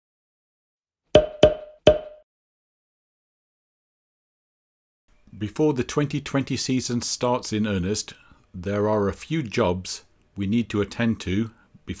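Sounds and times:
pitched percussive hits: 1.2 - 2.2.

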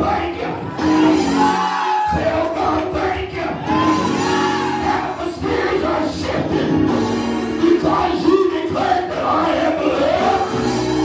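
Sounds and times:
man singing into a microphone: 2.0 - 6.9, 7.6 - 10.6.

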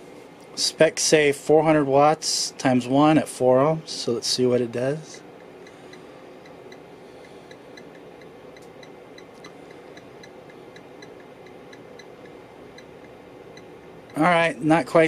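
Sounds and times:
amplifier low hum: 0.0 - 15.0
light even ticking: 5.4 - 14.3.

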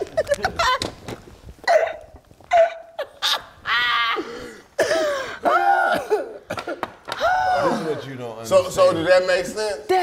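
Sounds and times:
high squealing cackle: 2.6 - 4.3.

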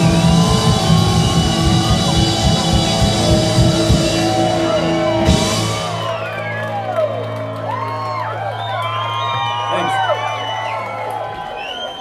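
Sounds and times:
rock band playing: 0.0 - 11.4
crowd whooping and shouting: 0.0 - 12.0.

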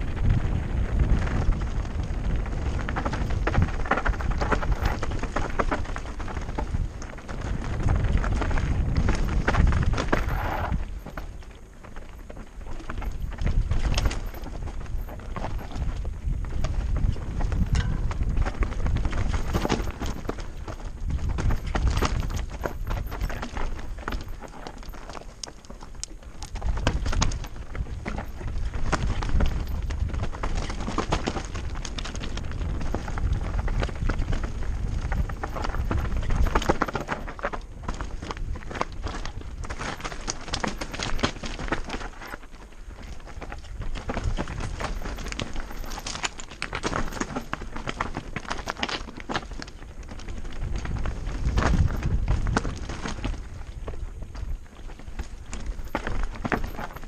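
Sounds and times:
bike rattling over bumps: 0.0 - 57.0
tyres crunching over stones: 0.0 - 57.0
wind rumble on microphone: 0.0 - 57.0.

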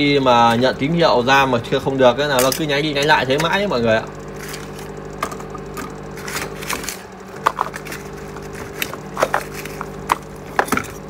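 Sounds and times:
fan humming: 0.0 - 11.0
clicks and knocks of computer parts: 2.3 - 11.0.

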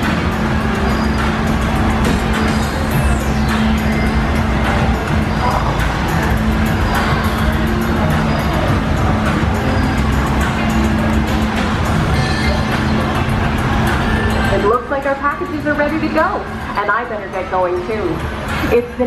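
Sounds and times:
factory machinery hum: 0.0 - 17.2
background music: 0.0 - 19.0.

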